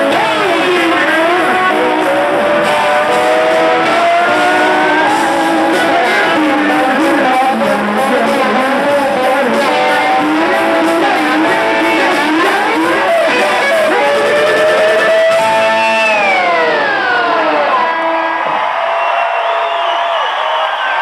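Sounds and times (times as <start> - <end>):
lap steel guitar sliding phrases: 0.0 - 18.4
live rock band playing: 0.0 - 18.9.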